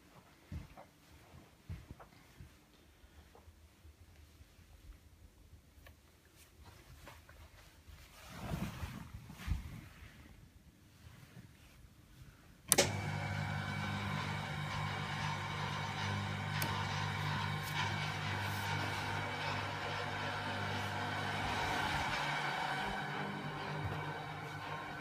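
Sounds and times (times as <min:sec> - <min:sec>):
window blind motor humming: 0:12.7 - 0:25.0.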